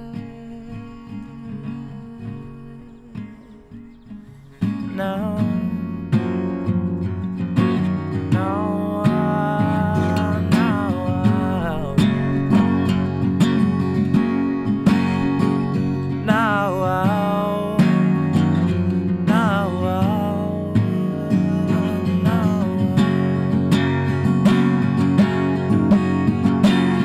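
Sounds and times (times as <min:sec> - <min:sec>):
person singing wordless melody: 0:00.0 - 0:06.6, 0:08.0 - 0:13.8, 0:15.4 - 0:23.9
acoustic guitar strumming: 0:00.0 - 0:27.0.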